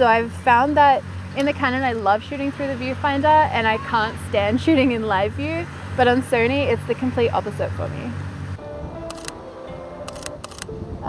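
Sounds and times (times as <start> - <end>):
background music: 6.8 - 11.0
camera shutter bursts: 9.1 - 9.4, 10.1 - 10.7.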